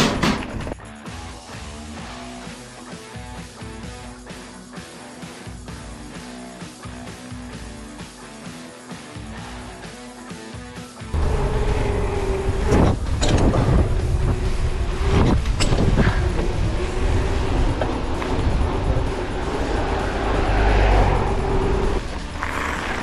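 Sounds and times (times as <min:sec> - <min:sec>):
tyres rolling hum: 0:11.1 - 0:23.0
wind buffeting microphone: 0:11.2 - 0:22.4.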